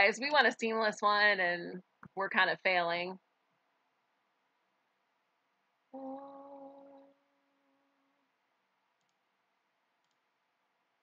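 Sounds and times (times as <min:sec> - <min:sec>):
computer mouse clicks: 0:09.0 - 0:09.2, 0:10.0 - 0:10.2.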